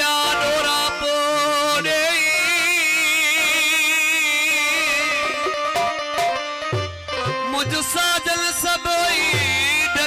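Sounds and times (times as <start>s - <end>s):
man singing long vibrato note: 0.0s - 5.5s
string accompaniment: 0.0s - 10.0s.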